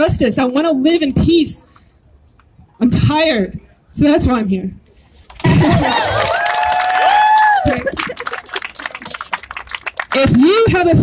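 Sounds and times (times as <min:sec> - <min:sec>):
crowd clapping: 0:05.3 - 0:10.5.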